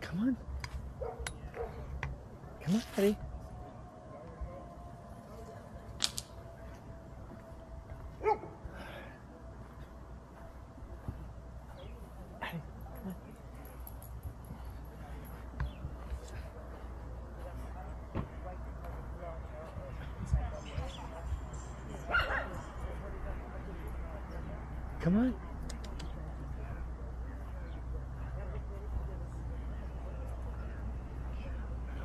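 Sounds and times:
dog barking: 0:01.0 - 0:02.0, 0:08.2 - 0:08.6, 0:22.1 - 0:22.6.

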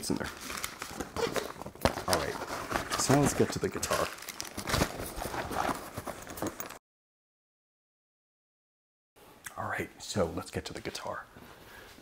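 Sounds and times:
knocks and rustles of gig bag: 0:00.9 - 0:06.8.

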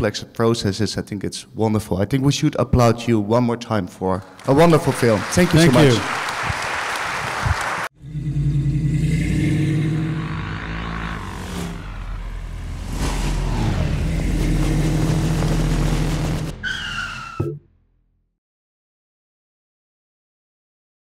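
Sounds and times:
audience applause: 0:04.3 - 0:07.9
low engine-like drone: 0:08.0 - 0:16.6
short falling squeal: 0:16.6 - 0:17.7.

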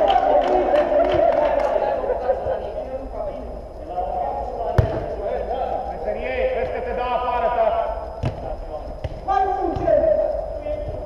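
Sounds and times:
football being kicked: 0:04.8 - 0:05.1, 0:08.2 - 0:08.4, 0:09.0 - 0:10.0.

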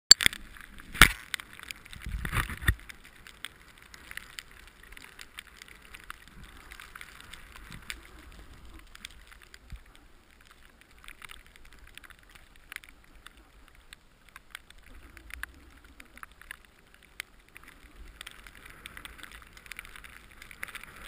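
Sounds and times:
skis sliding over snow: 0:00.4 - 0:21.0.

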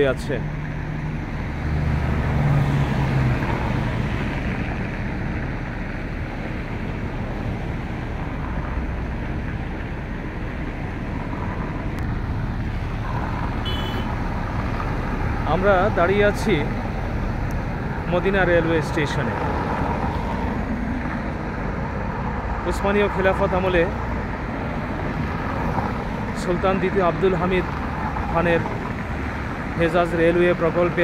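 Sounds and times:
passing vehicles engine hum: 0:00.0 - 0:31.0
road traffic noise: 0:00.0 - 0:31.0.

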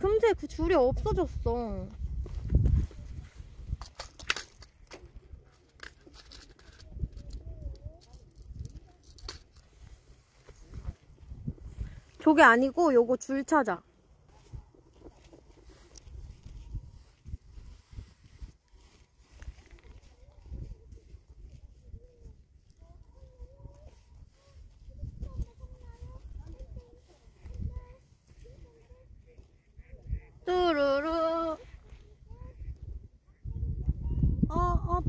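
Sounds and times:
wind rumble on microphone: 0:00.0 - 0:04.0, 0:06.6 - 0:12.3, 0:14.4 - 0:35.0.

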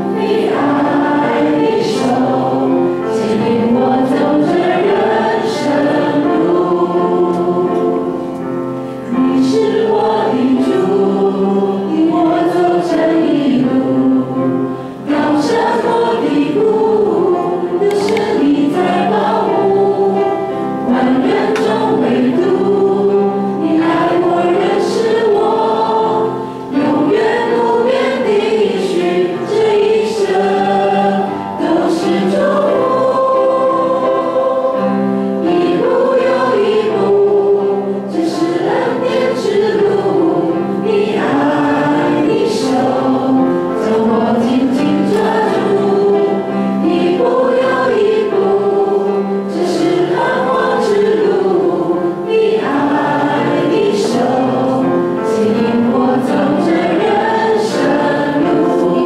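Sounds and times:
group singing a hymn: 0:00.0 - 0:59.0
piano accompaniment: 0:00.0 - 0:59.0.

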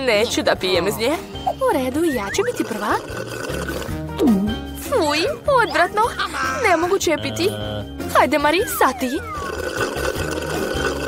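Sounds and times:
slurping through a straw: 0:02.0 - 0:04.4, 0:08.6 - 0:11.0.

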